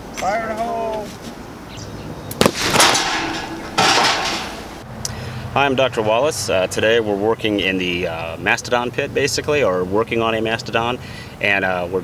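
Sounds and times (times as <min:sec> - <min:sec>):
explosive charge bang: 0:02.4 - 0:04.8.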